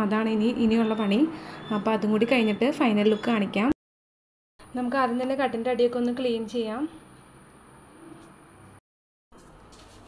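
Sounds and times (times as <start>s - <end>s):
woman talking: 0.0s - 3.8s, 4.7s - 7.0s.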